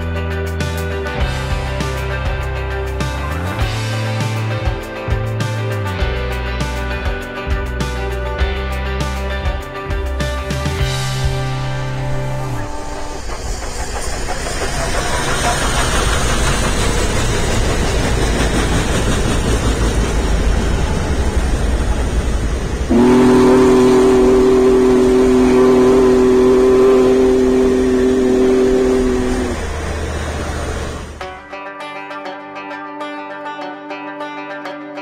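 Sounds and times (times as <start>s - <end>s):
passing train rumble: 0.0s - 31.4s
steam locomotive whistle: 10.8s - 18.5s, 22.8s - 31.2s.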